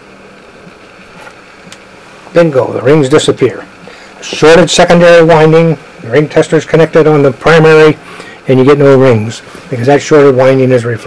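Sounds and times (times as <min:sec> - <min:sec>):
low hiss and hum: 0:00.0 - 0:11.0.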